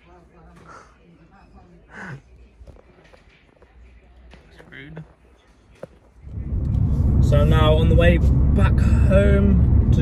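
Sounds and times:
engine and road rumble: 6.1 - 10.0.

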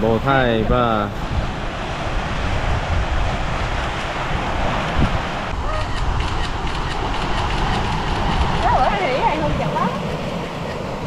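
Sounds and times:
waves washing onto rocky shore: 0.0 - 11.0
wind buffeting microphone: 0.0 - 11.0.

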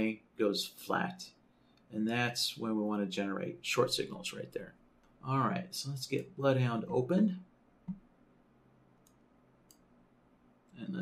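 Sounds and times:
man speaking: 0.0 - 7.5, 10.8 - 11.0
computer mouse clicks: 9.0 - 9.9.

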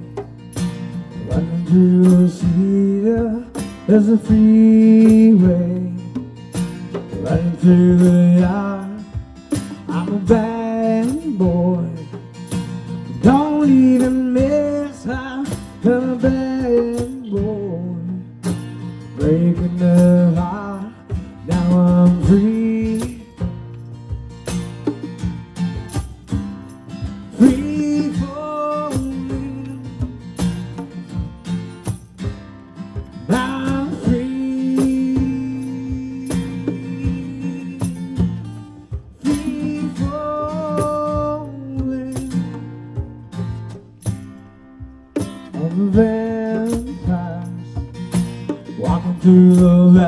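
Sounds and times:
drum and conga hits: 0.0 - 50.0
strummed acoustic guitar: 0.0 - 50.0
man singing: 1.2 - 6.2, 7.0 - 12.2, 13.2 - 18.4, 19.1 - 23.5, 27.3 - 30.2, 33.3 - 38.5, 39.2 - 42.8, 45.5 - 47.9, 48.7 - 50.0.

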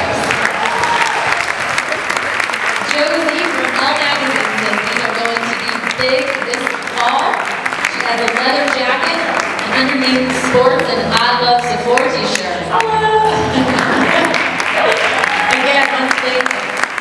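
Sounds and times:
audience clapping: 0.0 - 17.0
crowd voices: 0.0 - 17.0.

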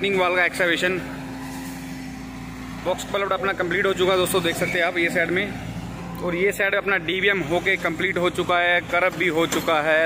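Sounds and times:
excavator diesel engine running: 0.0 - 10.0.

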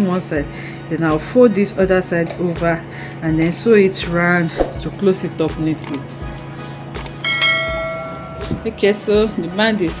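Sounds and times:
soft background music: 0.0 - 10.0
notification bell chime: 7.2 - 8.8.

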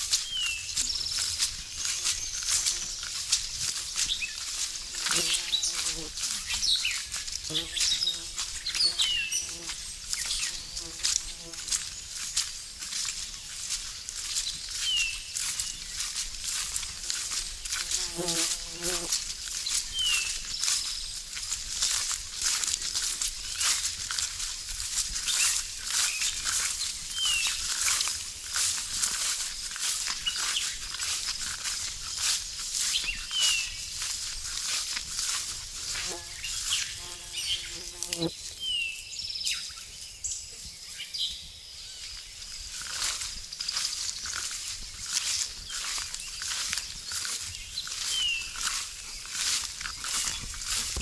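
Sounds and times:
footsteps through wet grass: 0.0 - 39.7, 42.0 - 51.0
flying insect buzzing: 4.8 - 6.6, 7.4 - 11.7, 17.0 - 19.4, 35.2 - 38.4.

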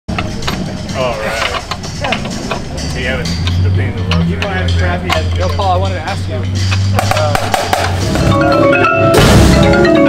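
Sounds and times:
taps on snare drum head: 7.0 - 8.0.

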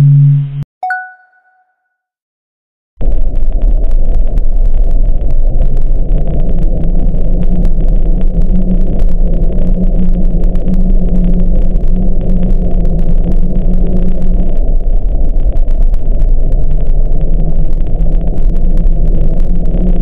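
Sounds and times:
steady drone: 0.0 - 0.6
underwater volcanic rumble: 0.0 - 0.6, 3.0 - 20.0.

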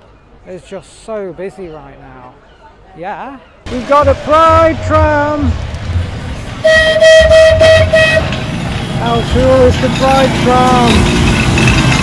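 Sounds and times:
tram horn: 4.0 - 9.1.

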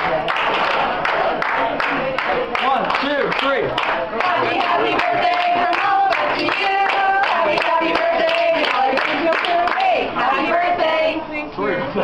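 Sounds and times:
people clapping a steady beat: 0.0 - 10.2
voices chanting a song: 4.2 - 11.5.

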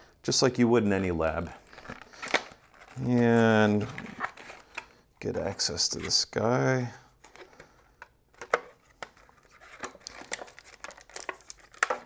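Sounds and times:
plastic packaging crinkling: 1.6 - 5.0, 8.4 - 12.0.

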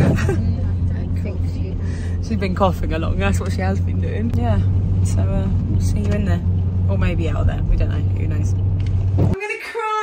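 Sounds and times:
car cabin rumble: 0.0 - 9.5.

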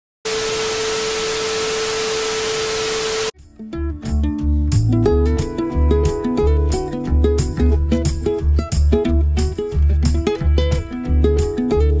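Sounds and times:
static hiss with steady tone: 0.3 - 3.3.

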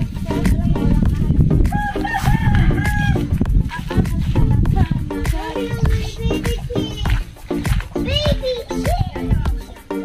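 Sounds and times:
background music with steady beat: 0.0 - 10.0
rooster crowing: 1.7 - 3.3.

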